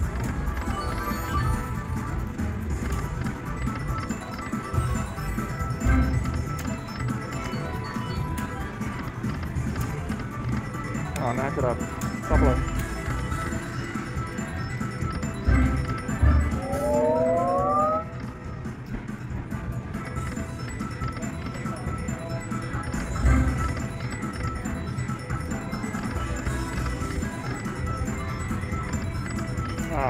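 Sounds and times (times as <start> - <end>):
slot machine tones and jingles: 0.0 - 18.7, 19.8 - 30.0
machine chimes: 0.5 - 2.1, 10.7 - 18.2.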